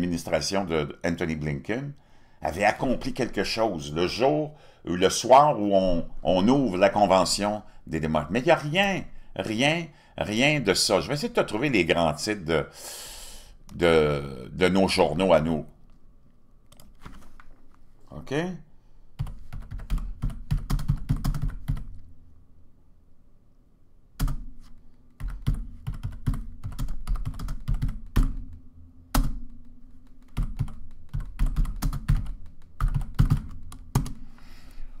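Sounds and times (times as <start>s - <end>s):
typing on computer keyboard: 19.2s - 22.0s, 25.2s - 28.4s, 30.2s - 34.2s.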